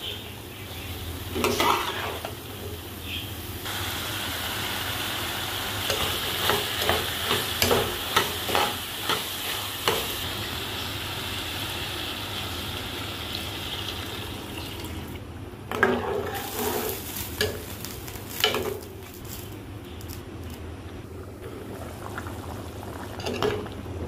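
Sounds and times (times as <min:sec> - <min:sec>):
food sizzling: 0:00.0 - 0:20.2, 0:21.0 - 0:24.0.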